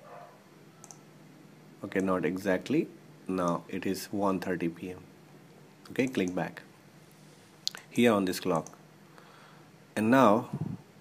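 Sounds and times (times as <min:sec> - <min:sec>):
faint steady hum: 0:00.0 - 0:11.0
computer mouse click: 0:00.8 - 0:01.0.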